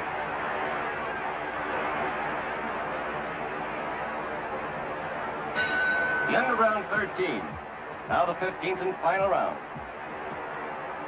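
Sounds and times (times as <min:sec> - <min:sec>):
crowd noise: 0:00.0 - 0:11.0
high bell tone: 0:05.6 - 0:06.8.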